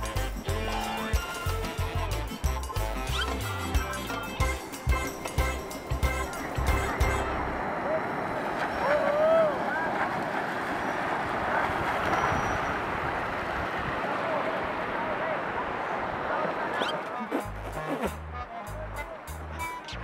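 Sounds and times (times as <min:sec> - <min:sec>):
background music with a beat: 0:00.0 - 0:07.3
surf: 0:00.0 - 0:20.0
wind noise: 0:04.9 - 0:16.9.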